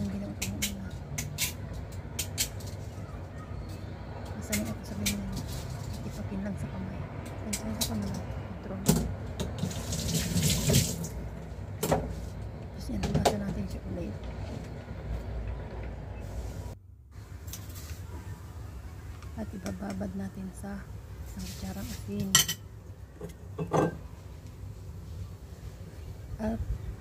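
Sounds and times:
running tap water: 0:09.4 - 0:11.2.

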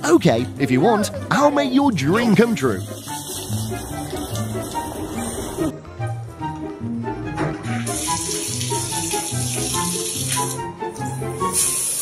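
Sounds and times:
background music with steady beat: 0:00.0 - 0:12.0
water running from bathtub spout: 0:02.3 - 0:05.7, 0:07.8 - 0:12.0.

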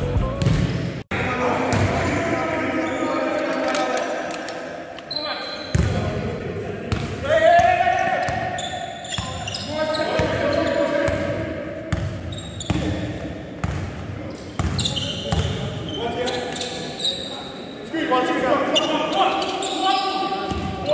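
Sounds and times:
players shouting: 0:01.1 - 0:05.0, 0:07.2 - 0:11.5.

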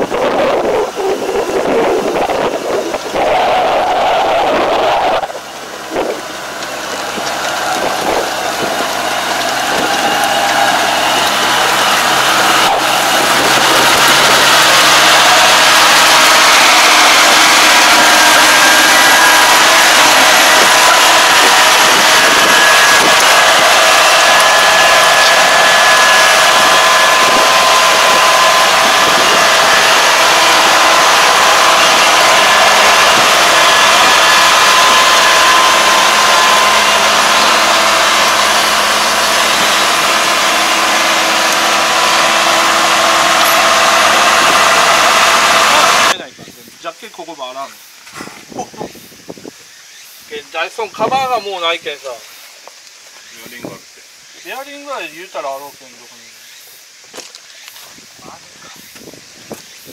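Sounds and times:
diesel engine running loud: 0:00.0 - 0:46.7.

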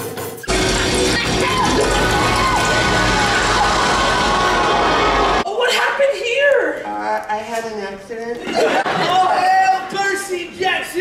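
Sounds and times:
loud dense stage music: 0:00.0 - 0:05.4
people shouting or screaming: 0:00.5 - 0:06.5.

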